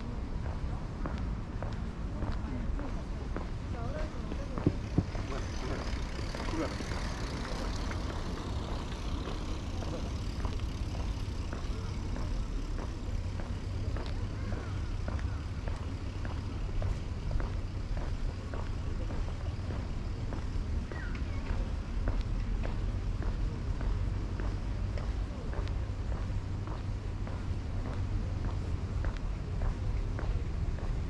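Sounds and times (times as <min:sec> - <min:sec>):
faint background voices: 0:00.0 - 0:31.0
steady low rumble: 0:00.0 - 0:31.0.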